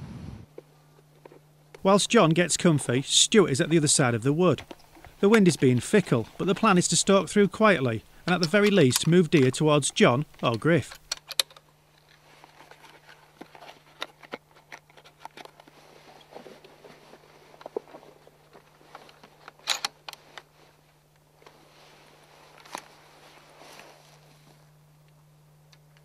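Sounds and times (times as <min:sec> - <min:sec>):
steady low hum: 0:00.0 - 0:26.0
cartridges clicking and rattling: 0:08.2 - 0:11.6.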